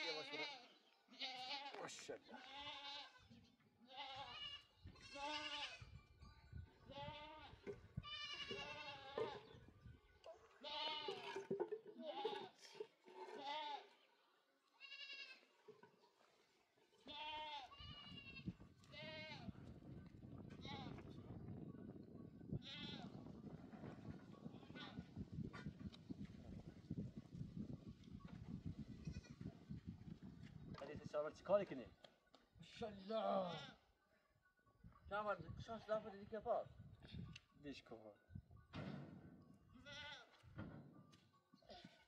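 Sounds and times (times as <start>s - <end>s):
goats bleating: 0.0s - 5.8s, 6.9s - 9.5s, 10.6s - 11.4s, 12.0s - 14.0s, 14.8s - 15.5s, 17.0s - 19.5s, 33.0s - 33.8s, 39.8s - 40.4s.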